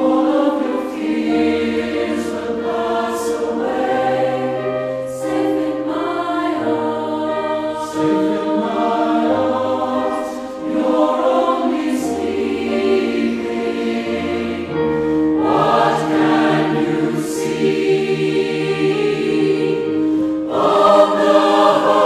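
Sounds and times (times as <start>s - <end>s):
mixed choir singing: 0.0s - 22.0s.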